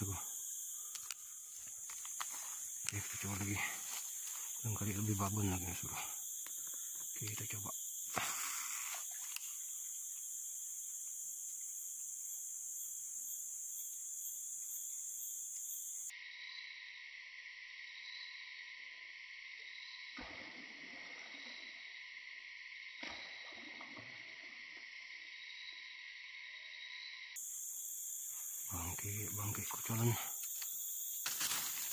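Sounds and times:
forest insects droning: 0.0s - 31.9s.

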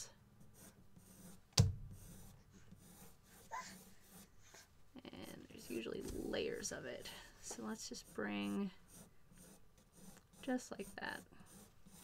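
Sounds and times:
pencil scratching on paper: 0.4s - 12.0s
person talking: 5.0s - 8.8s, 10.4s - 11.3s.

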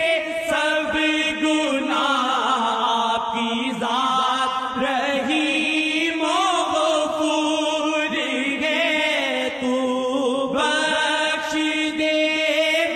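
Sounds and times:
person chanting devotional song: 0.0s - 12.9s.

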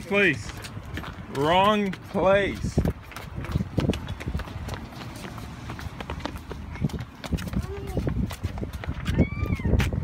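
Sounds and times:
children running on concrete: 0.0s - 10.0s.

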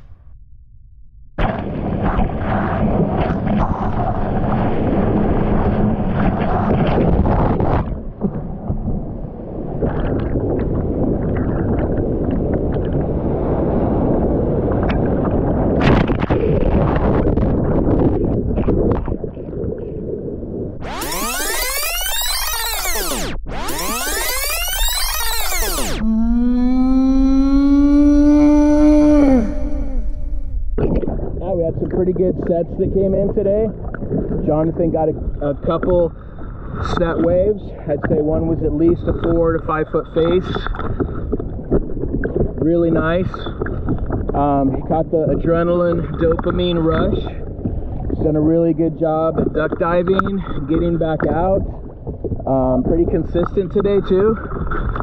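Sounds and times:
downward sliding tone: 20.8s - 30.8s.

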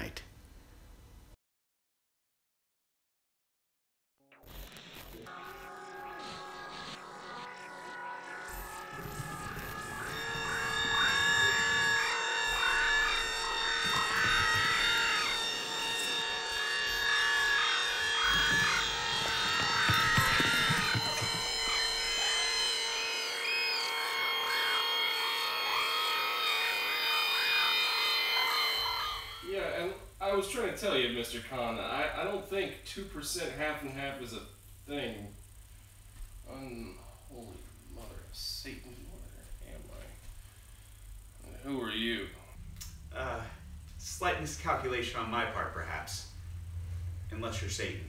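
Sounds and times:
warbling high synth sounds: 4.4s - 30.0s
droning synth tones: 4.5s - 31.2s, 34.2s - 48.0s.

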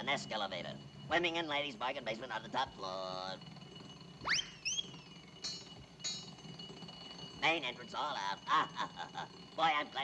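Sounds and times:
cartoon whistle swooping: 4.2s - 4.9s
bright ping: 4.2s - 6.7s.

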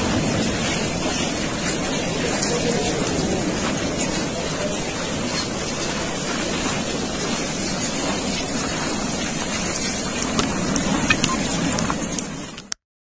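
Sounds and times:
lava flow rushing: 0.0s - 12.8s
wind on microphone: 0.0s - 12.8s.

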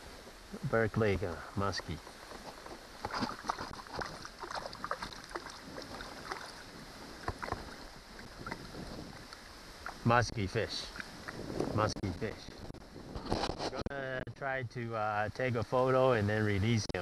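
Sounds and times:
wind on microphone: 2.2s - 13.9s
small water splashes: 2.7s - 10.1s, 10.8s - 11.5s.

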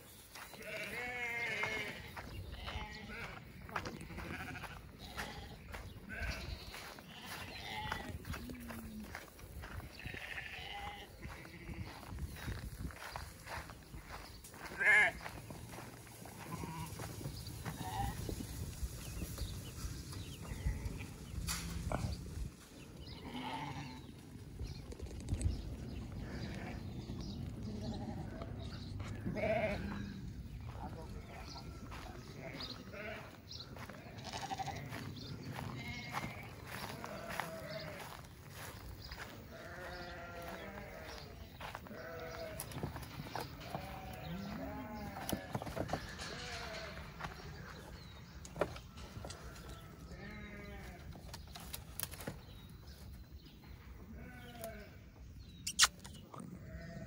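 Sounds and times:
sheep and goats bleating: 0.1s - 24.3s, 25.9s - 55.8s, 56.4s - 57.0s.

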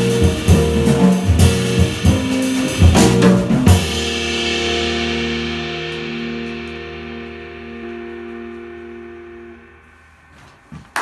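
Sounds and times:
jazz band final chord ringing: 0.0s - 10.6s.

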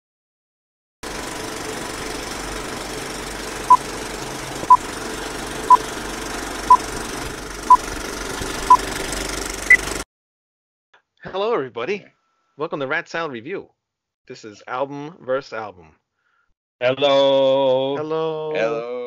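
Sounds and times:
film projector rattle: 1.0s - 10.0s.

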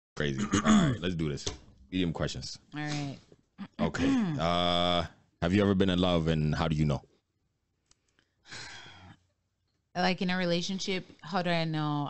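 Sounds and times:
person sighing: 0.4s - 1.0s, 3.8s - 4.7s.

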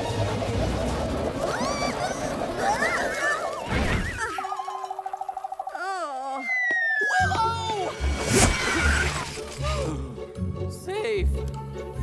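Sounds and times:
falling whistle: 6.4s - 7.3s.

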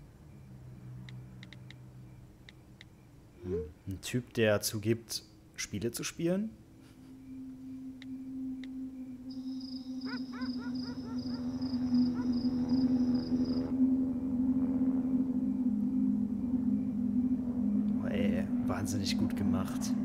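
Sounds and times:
high pulsing chirp: 0.0s - 20.0s
low droning tone: 6.6s - 20.0s.

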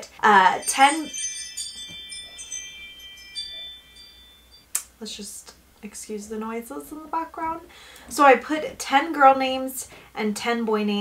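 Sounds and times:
chimes ringing: 0.2s - 4.8s.

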